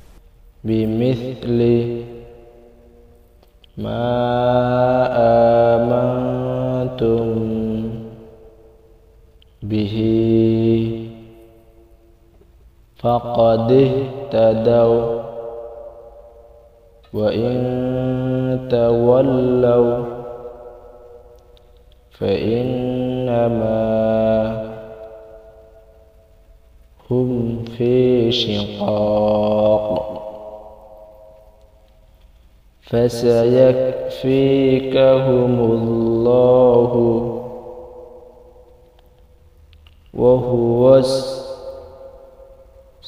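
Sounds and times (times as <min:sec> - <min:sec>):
faint low hum: 0:00.0 - 0:43.0
person reciting in chanted style: 0:00.1 - 0:08.8, 0:09.4 - 0:12.0, 0:12.9 - 0:26.4, 0:27.0 - 0:31.8, 0:32.8 - 0:39.0, 0:40.0 - 0:43.0.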